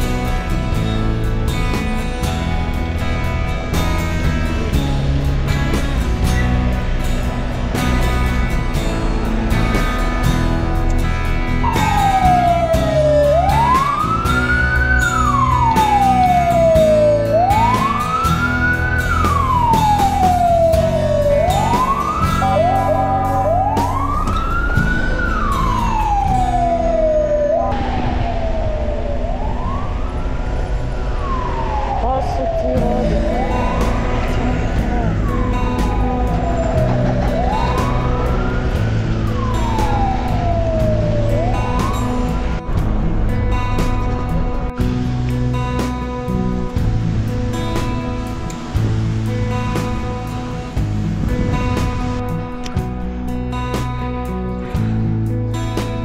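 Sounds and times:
emergency vehicle siren wailing: 0.0 - 55.8
background music: 0.0 - 56.0.

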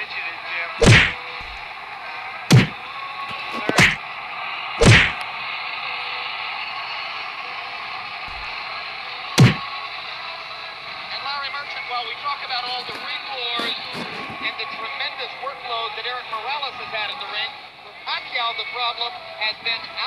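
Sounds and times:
punch whacks: 0.8 - 1.6, 2.5 - 2.8, 3.6 - 4.0, 4.8 - 5.2, 8.3 - 8.5, 9.4 - 9.6.

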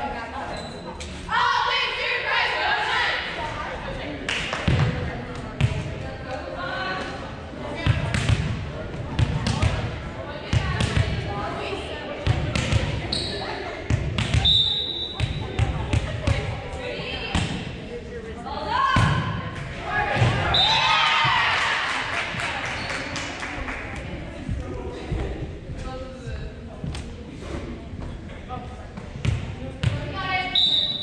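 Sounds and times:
volleyballs slapping and bouncing: 4.3 - 6.0, 7.8 - 11.2, 12.3 - 13.1, 13.9 - 14.4.

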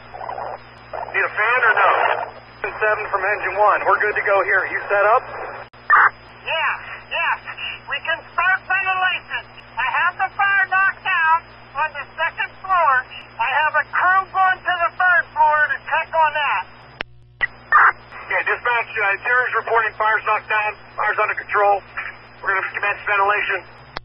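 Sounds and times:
steady hum: 0.0 - 24.0
radio speech: 0.1 - 23.9.

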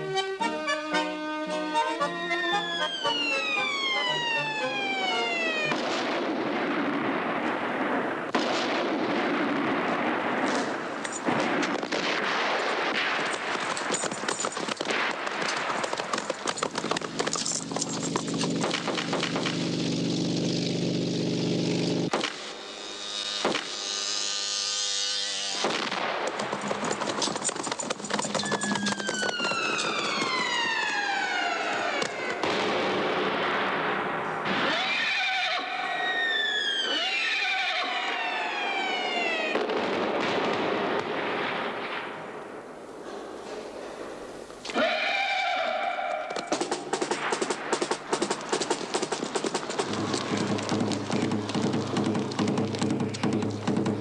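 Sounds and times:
falling whistles of incoming shells: 2.3 - 6.2, 12.5 - 20.5, 26.2 - 32.5, 34.6 - 39.9
gunfire: 2.9 - 22.6, 25.6 - 44.3, 46.2 - 54.0
explosions: 3.7 - 21.2, 25.6 - 34.9, 38.0 - 43.2.

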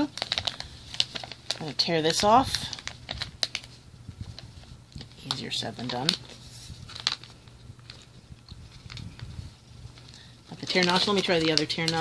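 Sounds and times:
foil packaging crackling: 0.0 - 12.0.

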